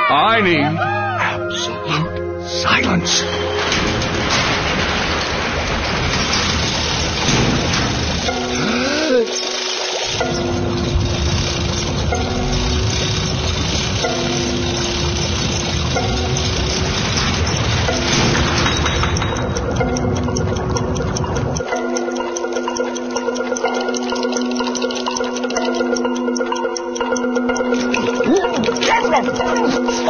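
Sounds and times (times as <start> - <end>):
fast clock-like ticking: 2.6 - 30.0
loud steady rumble: 3.3 - 21.7
low musical figure: 6.6 - 30.0.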